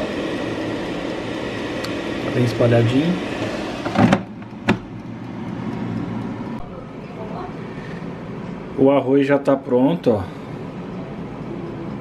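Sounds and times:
air fryer fan running: 0.0 - 12.0
air fryer basket clicking: 3.4 - 6.6.

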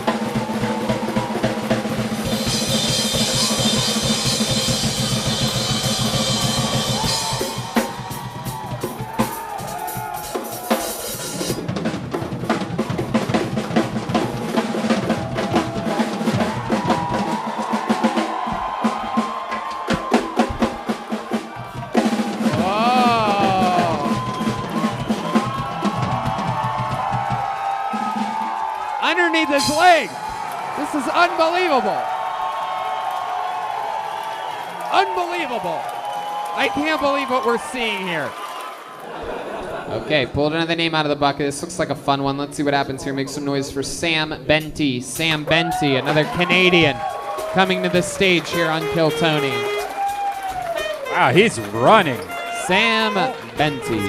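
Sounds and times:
live band with dense drumming: 0.0 - 32.3, 44.6 - 54.0.

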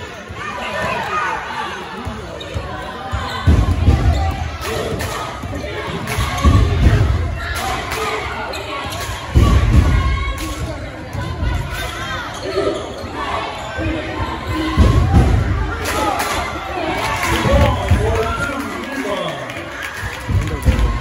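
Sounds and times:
spectator chatter: 0.0 - 21.0.

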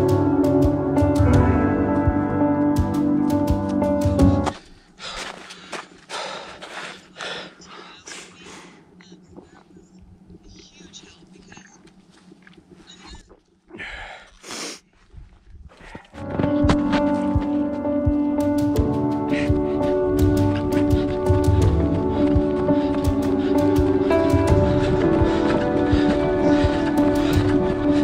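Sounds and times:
background music: 0.0 - 4.6, 16.2 - 28.0
runner breathing hard: 4.1 - 9.8, 18.7 - 28.0.

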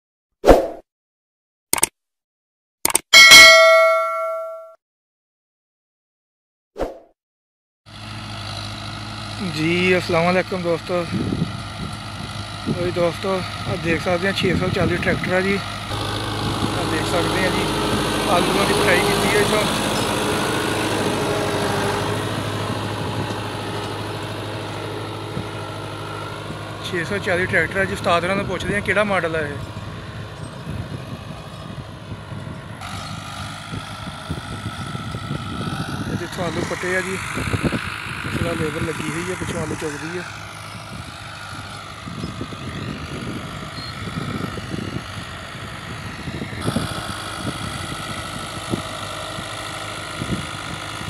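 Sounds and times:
bright bell chime: 3.2 - 4.8
tractor diesel engine under load: 7.9 - 51.0.

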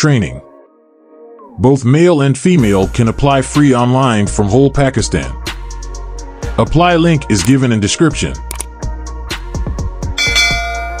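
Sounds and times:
music beat with deep drum hits: 8.3 - 11.0
bell ringing: 10.2 - 11.0.

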